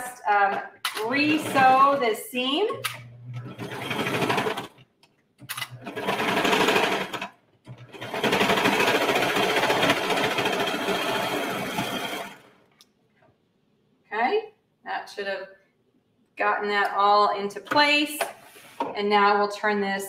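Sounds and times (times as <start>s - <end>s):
serger stitching: 0.5s - 12.6s.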